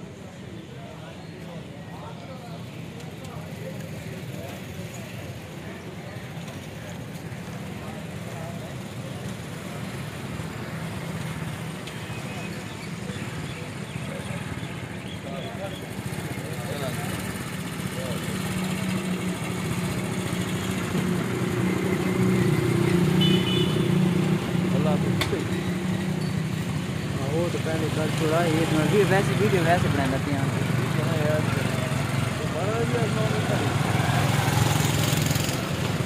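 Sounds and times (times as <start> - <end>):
faint indistinct voices: 0.0 - 22.8.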